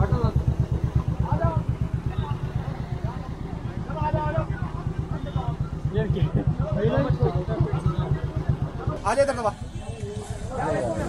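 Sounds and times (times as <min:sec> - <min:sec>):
motorcycle engine idling: 0:00.0 - 0:11.0
people talking: 0:00.0 - 0:11.0.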